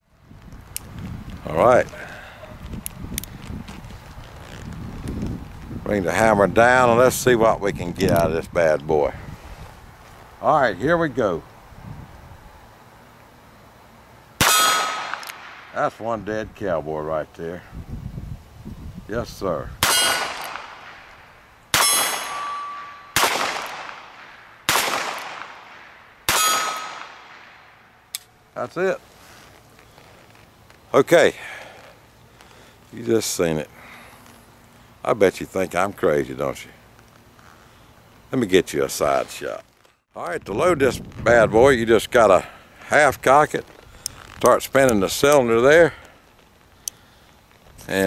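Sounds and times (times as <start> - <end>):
steel target ringing: 14.4 - 15.2, 19.8 - 20.8, 21.7 - 24.0, 26.3 - 27.1
revolver metallic clicks: 14.7 - 15.7
revolver shots echoing: 19.8 - 27.7.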